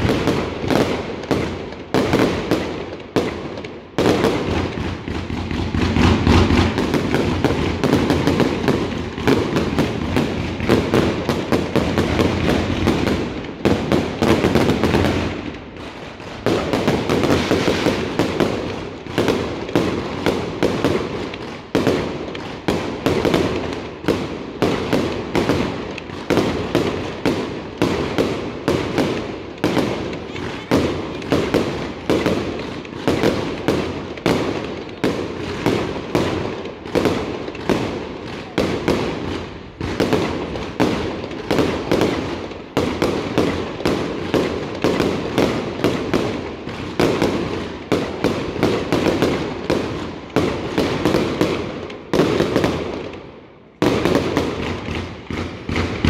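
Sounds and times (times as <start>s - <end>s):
fireworks bursting: 0.0s - 56.0s.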